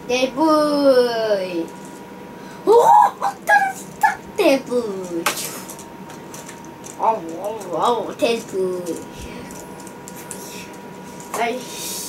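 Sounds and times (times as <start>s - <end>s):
plastic toy bricks clattering: 5.0s - 9.9s.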